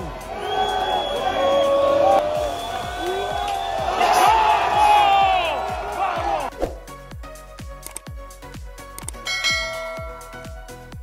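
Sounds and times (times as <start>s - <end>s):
background music with kick drum: 0.0s - 11.0s
notification bell ding: 9.3s - 10.6s.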